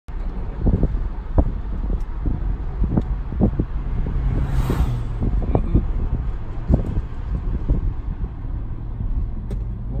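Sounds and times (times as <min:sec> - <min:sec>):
low road rumble: 0:00.1 - 0:10.0
wind buffeting microphone: 0:00.4 - 0:10.0.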